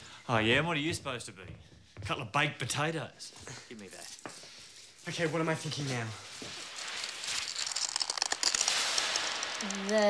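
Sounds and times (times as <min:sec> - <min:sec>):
foil crinkling and crackling: 0:05.0 - 0:10.0
person speaking: 0:09.6 - 0:10.0.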